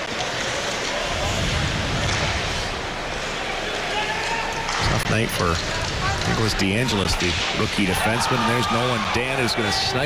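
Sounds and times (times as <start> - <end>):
crowd and ice hockey game noise: 0.0 - 10.0.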